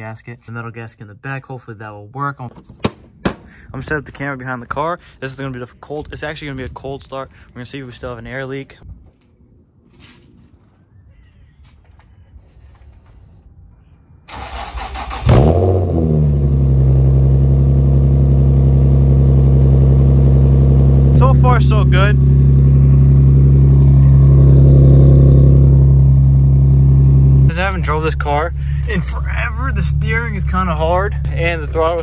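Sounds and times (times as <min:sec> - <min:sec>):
engine cranking: 0:14.3 - 0:15.5
car engine revving and idling: 0:15.2 - 0:32.0.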